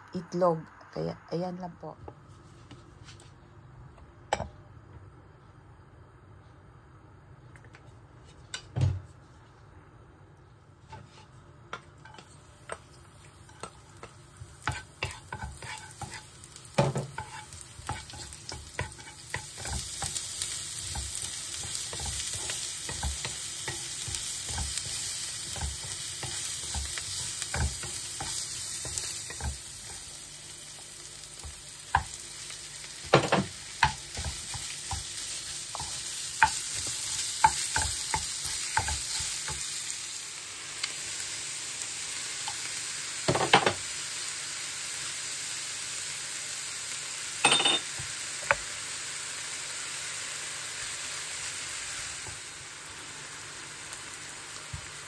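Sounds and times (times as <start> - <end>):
food sizzling in frying pan: 10.8 - 55.0.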